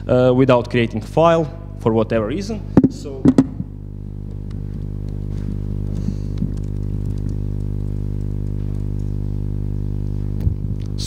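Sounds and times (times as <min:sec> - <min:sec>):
low electrical hum: 0:00.0 - 0:11.0
computer keyboard keystrokes: 0:06.0 - 0:09.2.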